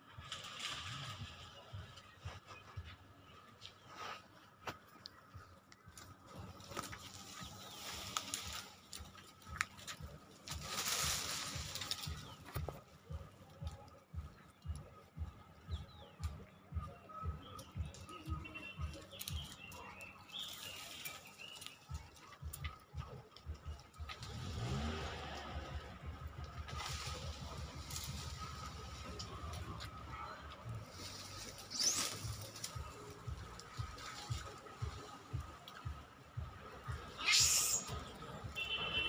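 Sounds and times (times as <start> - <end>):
bird chirps: 5.2 - 24.1, 26.8 - 36.0
vehicle engine rising in pitch: 24.2 - 29.6.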